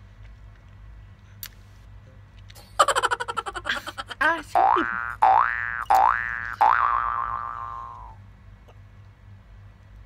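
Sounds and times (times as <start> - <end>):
cartoon boing twang: 4.6 - 8.2.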